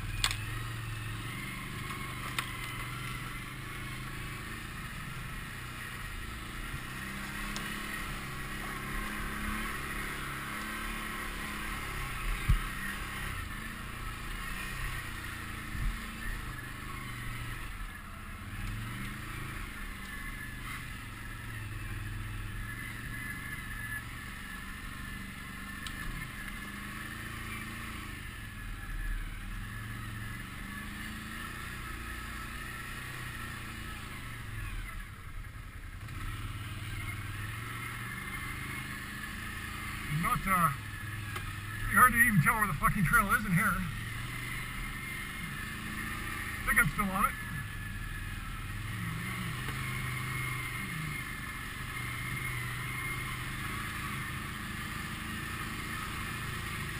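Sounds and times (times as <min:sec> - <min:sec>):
atv engine running: 0:00.0 - 0:56.9.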